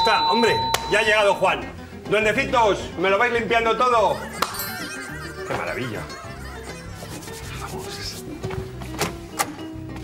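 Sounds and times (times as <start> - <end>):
soft background music: 0.0 - 10.0
rubbing and scraping: 6.7 - 8.4.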